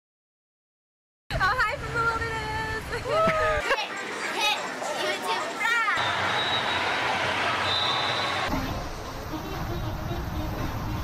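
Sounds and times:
voices: 0:01.4 - 0:09.8.

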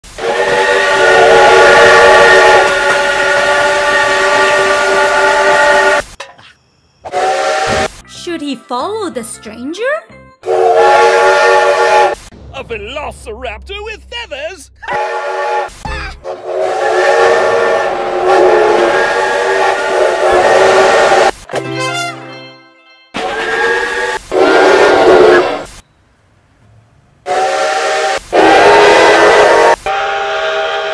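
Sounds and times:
steam locomotive whistle: 0:00.0 - 0:06.0, 0:07.0 - 0:08.0, 0:10.4 - 0:12.3, 0:14.8 - 0:22.2, 0:23.2 - 0:25.7, 0:27.2 - 0:30.9.

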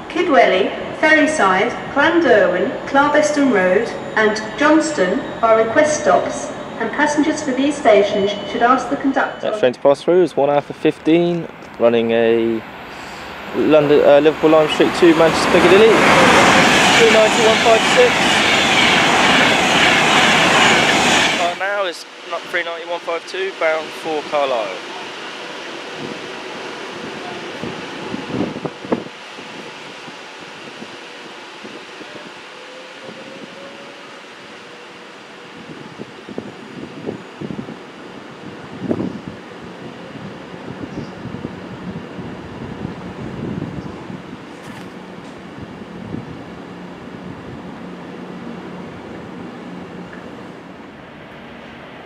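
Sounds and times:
electric train running noise: 0:00.0 - 0:52.0.

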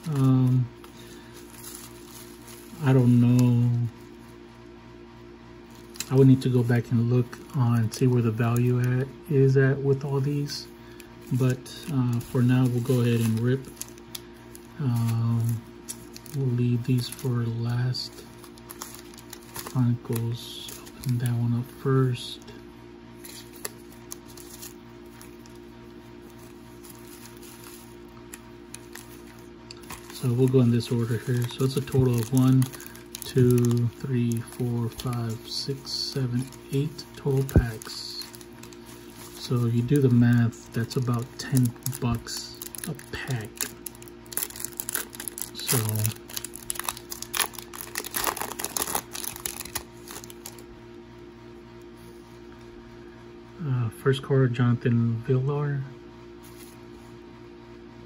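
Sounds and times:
foil packs crinkling: 0:00.0 - 0:04.2, 0:05.7 - 0:22.6, 0:23.2 - 0:50.7
steady low drone: 0:05.7 - 0:50.7.

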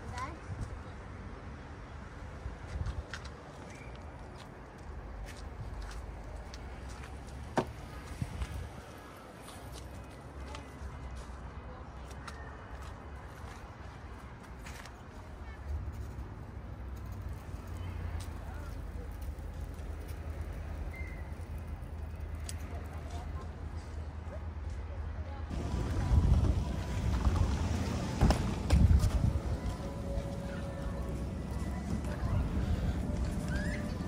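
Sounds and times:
wind rumble on microphone: 0:08.1 - 0:08.9, 0:25.5 - 0:34.0.

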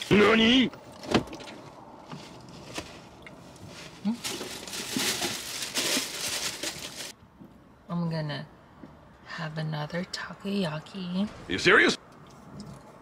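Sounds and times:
food packaging rustling: 0:01.3 - 0:07.2.

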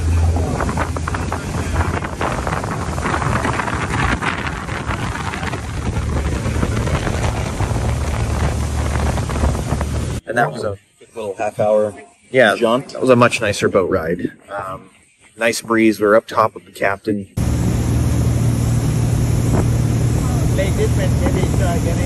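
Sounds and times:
boat engines droning: 0:00.0 - 0:10.2, 0:17.4 - 0:22.0
rush of boat wake: 0:00.0 - 0:10.2, 0:17.4 - 0:22.0
wind buffeting microphone: 0:00.0 - 0:10.2, 0:17.4 - 0:22.0.

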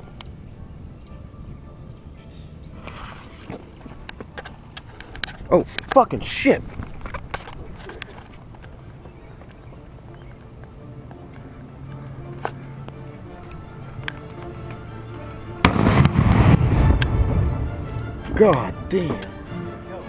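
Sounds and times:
explosive bang: 0:15.6 - 0:18.4
loud rushing noise: 0:15.6 - 0:18.4.

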